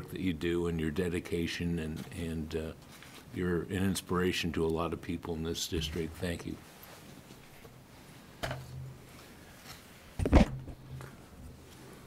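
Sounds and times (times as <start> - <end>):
loud thump on microphone: 10.2 - 10.9.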